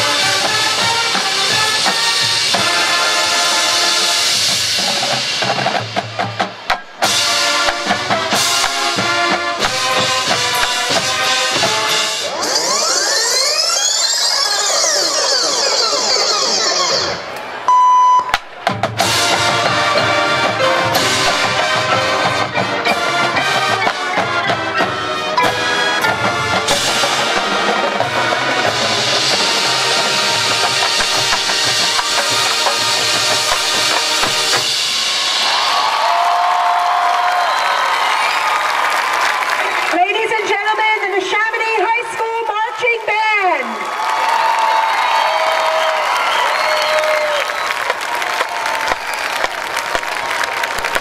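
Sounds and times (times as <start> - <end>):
marching band brass and drums: 0.0 - 13.1, 16.2 - 42.7, 43.8 - 51.0
crowd applauding and cheering: 0.0 - 51.0
synthesized rising and falling glides: 12.1 - 17.3
loud steady beep: 17.7 - 18.3.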